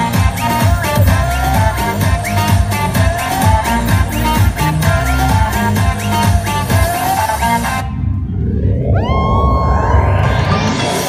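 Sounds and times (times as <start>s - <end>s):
rising noise sweep: 7.0s - 11.0s
synth tone sliding up: 7.6s - 11.0s.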